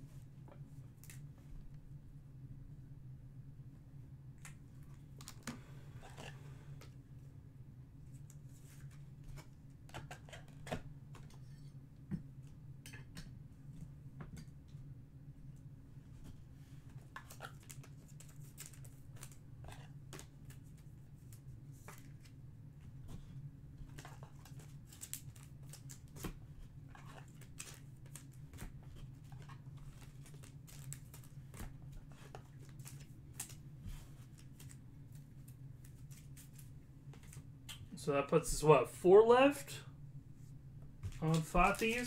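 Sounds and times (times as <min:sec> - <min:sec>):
low steady hum: 0:00.0 - 0:42.0
cards and wrappers crinkling: 0:17.2 - 0:20.9, 0:23.9 - 0:37.4, 0:41.1 - 0:42.0.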